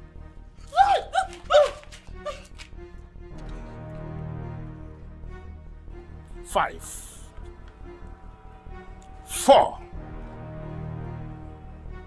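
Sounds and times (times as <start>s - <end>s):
film music with low drone: 0.0s - 12.0s.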